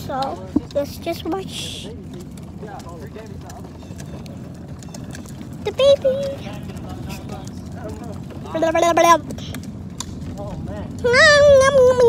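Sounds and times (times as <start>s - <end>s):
plastic wheels rolling on asphalt: 0.0s - 12.0s
child calling out: 11.0s - 12.0s.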